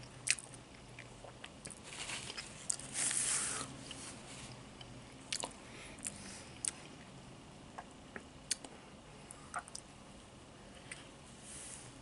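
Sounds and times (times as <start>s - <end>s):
small crunches: 1.6s - 4.0s.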